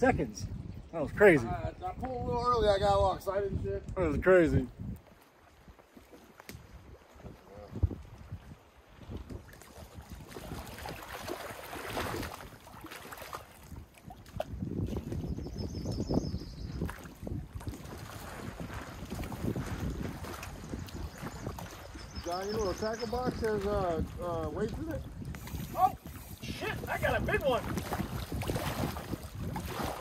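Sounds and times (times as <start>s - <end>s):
wind gusting on microphone: 0.0s - 5.8s, 6.5s - 30.0s
water lapping at shore: 3.3s - 15.9s, 16.7s - 30.0s.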